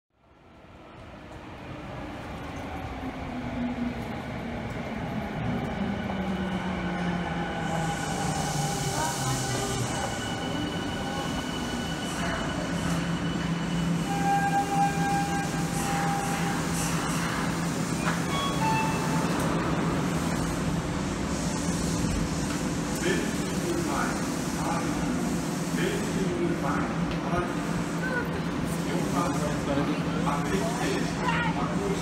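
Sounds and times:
subway train rumbling: 0.1 - 32.0
train whining tones: 6.4 - 21.3.

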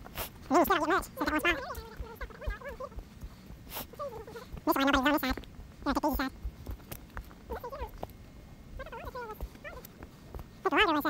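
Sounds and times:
high-pitched wavering vocal sounds: 0.4 - 6.4, 7.5 - 8.1, 8.7 - 10.0, 10.6 - 11.0
faint scattered clicks: 4.2 - 8.3.

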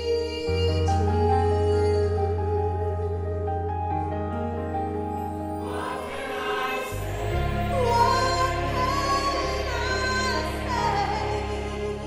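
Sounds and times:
sustained instrumental backing: 3.7 - 12.0
choir singing worship song: 5.5 - 12.0.

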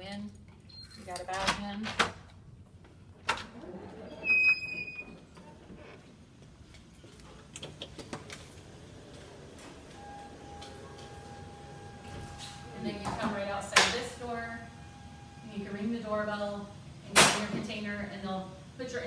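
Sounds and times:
door squealing: 3.6 - 5.2.

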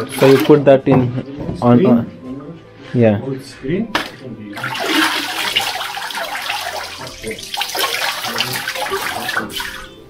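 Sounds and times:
water sloshing and streaming: 0.0 - 0.6, 4.6 - 10.0.

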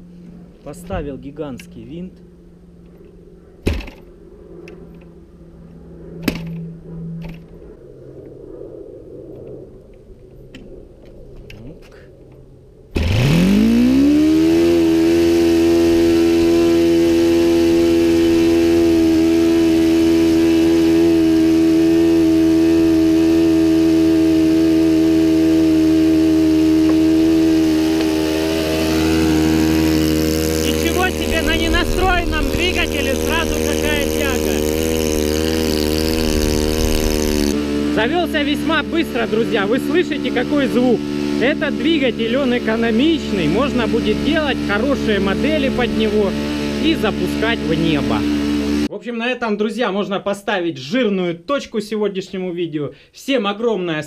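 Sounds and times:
model aircraft engine revving: 12.9 - 48.9.

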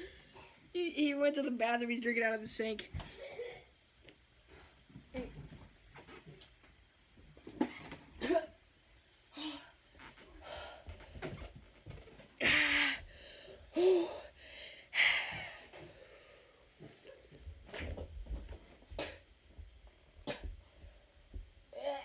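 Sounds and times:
boy wheezing and gasping: 3.0 - 3.7, 12.4 - 15.9
boy groaning: 21.8 - 22.0.

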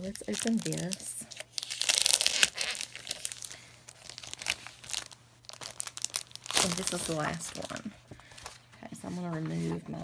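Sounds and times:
plastic wrapping crinkling: 0.0 - 8.7.

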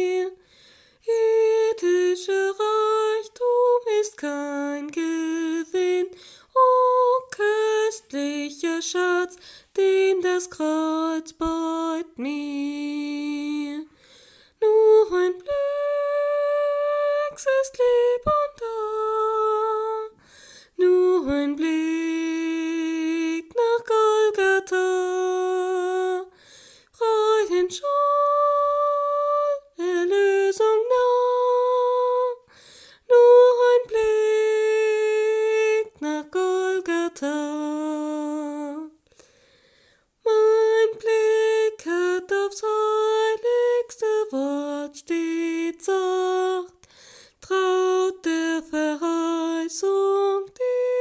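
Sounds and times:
person singing a hymn: 0.0 - 0.4, 14.6 - 20.2, 20.8 - 39.0, 40.2 - 51.0.

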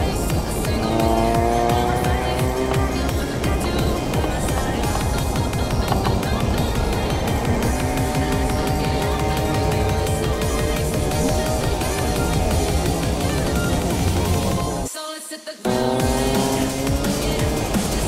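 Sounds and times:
car engine revving: 0.0 - 14.9, 15.7 - 18.0
road noise: 0.0 - 14.9, 15.7 - 18.0
background music: 0.0 - 18.0.

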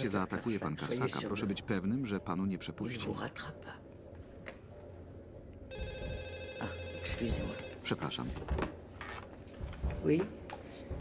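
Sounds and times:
desk telephone ringing: 5.7 - 8.0.

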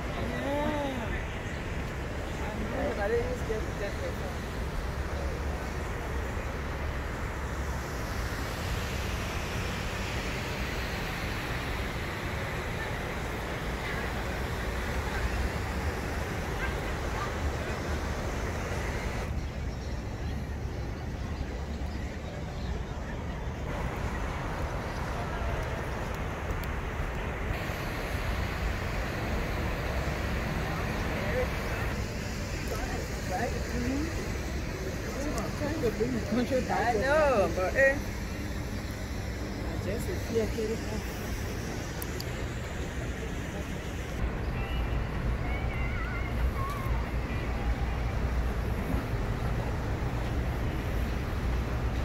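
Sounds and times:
high hiss: 0.0 - 19.3, 23.7 - 52.0.

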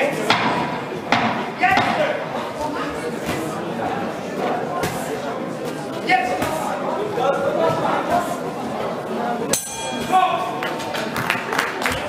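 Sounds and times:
crowd shouting and chatter: 0.0 - 12.0.

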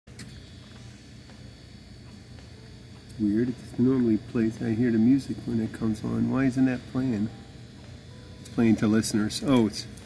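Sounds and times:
thin high-pitched whine: 0.1 - 10.0
low hum: 0.2 - 10.0.

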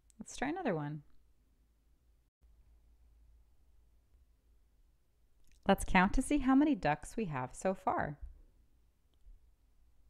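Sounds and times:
woman speaking: 0.2 - 1.2, 5.5 - 8.3.

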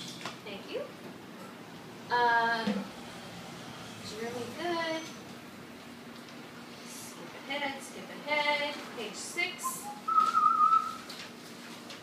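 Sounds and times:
high whistled note: 9.6 - 11.0.

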